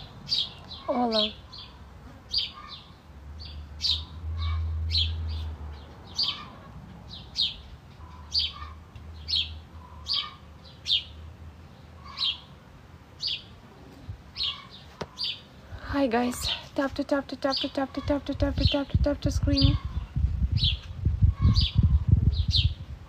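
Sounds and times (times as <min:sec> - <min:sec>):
small bird chirping: 0:14.3 - 0:15.5, 0:17.4 - 0:22.8.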